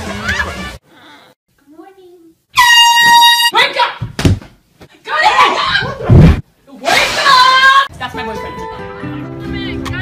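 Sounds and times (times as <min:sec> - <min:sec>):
air horn blast: 0:02.6 - 0:03.5.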